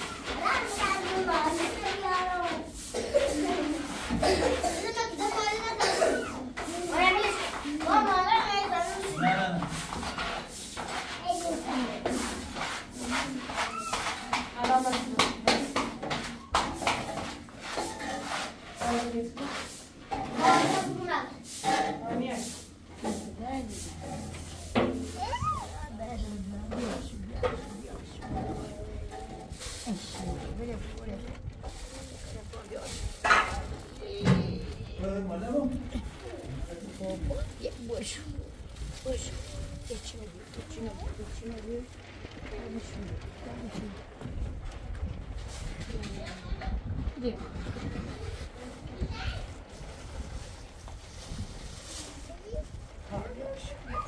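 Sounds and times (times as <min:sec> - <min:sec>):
people talking: 0:00.0 - 0:09.8, 0:11.0 - 0:16.0, 0:18.2 - 0:24.2, 0:25.0 - 0:44.1, 0:45.7 - 0:49.6, 0:52.1 - 0:54.0
short knocks and scrapes: 0:00.0 - 0:35.0.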